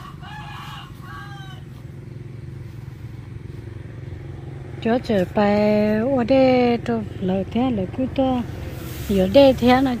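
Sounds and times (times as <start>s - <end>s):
chicken calling: 0.0s - 2.0s
small engine idling: 0.0s - 10.0s.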